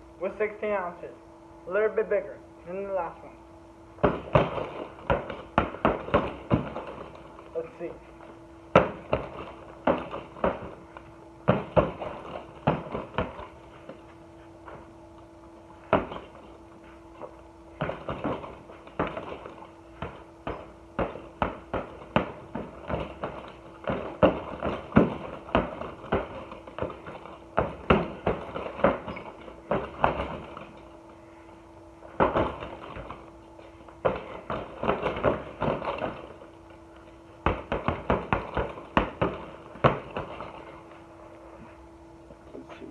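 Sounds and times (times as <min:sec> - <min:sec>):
boxing gloves punching heavy bag: 0:04.0 - 0:08.0, 0:08.7 - 0:14.9, 0:15.7 - 0:31.0, 0:32.0 - 0:40.9.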